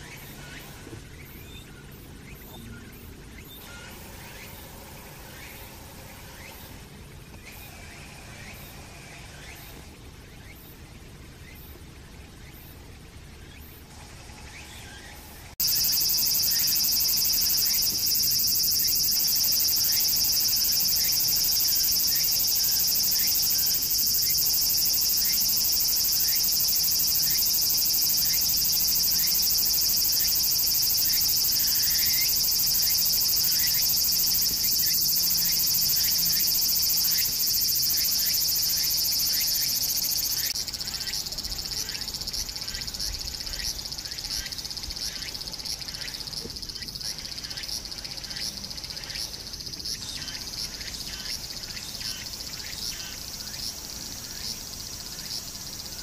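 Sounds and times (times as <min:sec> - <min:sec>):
insects shrilling: 0:15.6 - 0:56.0.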